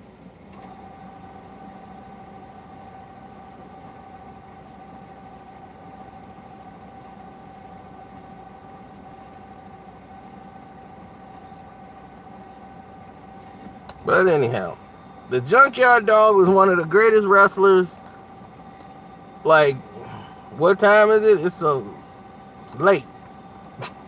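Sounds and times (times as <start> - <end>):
car engine idling: 0.0 - 24.0
steady mid-pitched tone: 0.8 - 24.0.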